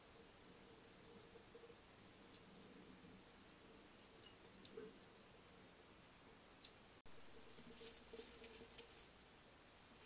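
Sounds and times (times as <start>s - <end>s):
hedgehog pattering: 6.6s - 10.0s.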